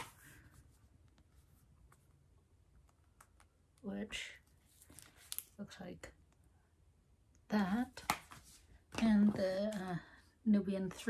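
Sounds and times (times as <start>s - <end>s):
soft rustle: 4.4s - 5.6s.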